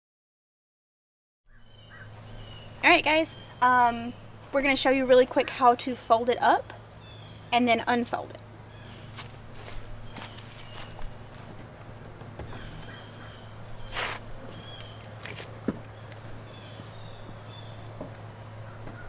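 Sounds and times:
rustling of fabric and foam: 0:09.1 - 0:12.7.

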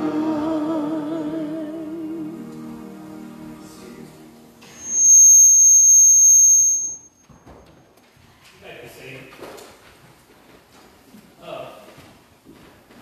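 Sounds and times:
high-pitched feedback squeal: 0:04.6 - 0:07.6.

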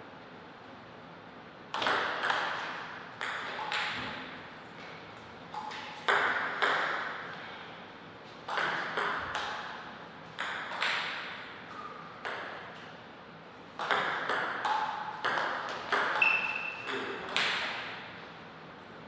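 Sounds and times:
table tennis ball hits: 0:01.7 - 0:04.5, 0:05.5 - 0:07.3, 0:08.4 - 0:09.8, 0:10.4 - 0:12.9, 0:13.8 - 0:18.1.

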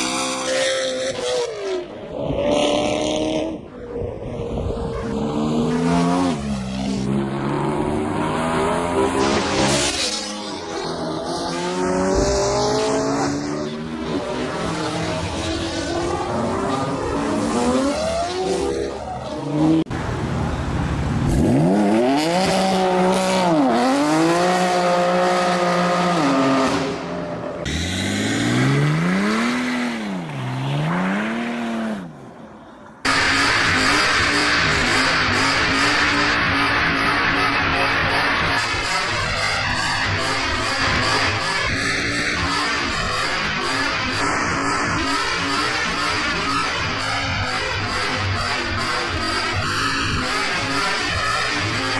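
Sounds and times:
car engines revving: 0:00.0 - 0:51.9
tires squealing: 0:33.0 - 0:51.9.

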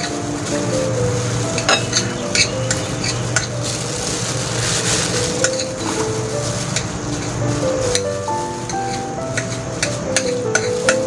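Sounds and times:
plastic gloves crinkling: 0:00.0 - 0:11.0.

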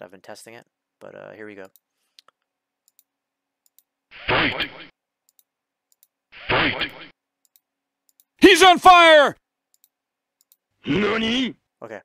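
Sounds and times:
faint mouse clicks: 0:01.6 - 0:03.9
announcer shouting: 0:08.4 - 0:09.4, 0:10.9 - 0:11.6.

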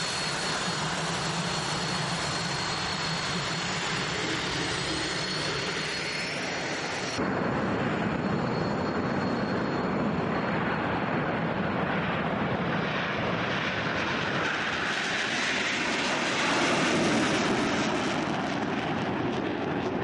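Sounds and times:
jet engines at takeoff power: 0:00.0 - 0:20.0.

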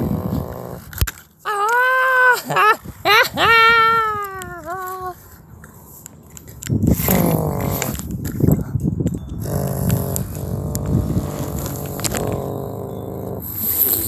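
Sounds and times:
person imitating car engines: 0:00.0 - 0:05.2, 0:06.9 - 0:08.2, 0:09.4 - 0:14.0.

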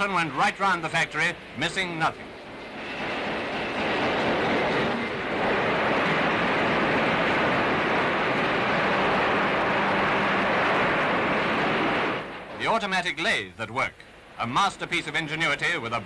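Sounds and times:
factory machinery rushing noise: 0:00.0 - 0:13.2, 0:13.9 - 0:16.0.

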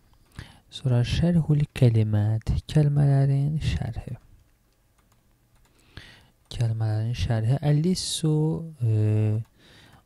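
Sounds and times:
computer keyboard clicking: 0:04.0 - 0:06.7.

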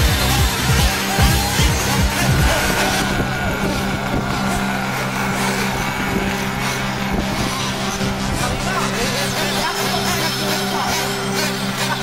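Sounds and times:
small engines buzzing and revving: 0:00.0 - 0:12.0.

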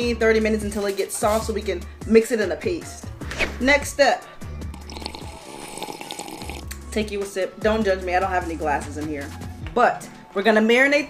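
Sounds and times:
background music: 0:00.0 - 0:11.0
woman sipping a drink: 0:04.6 - 0:06.9.

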